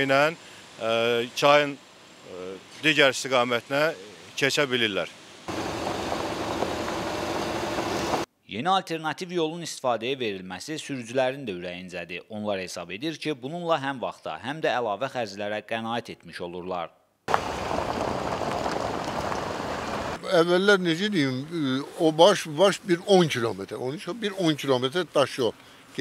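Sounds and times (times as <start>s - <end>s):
cars driving on gravel: 5.5s - 8.3s, 17.3s - 20.7s.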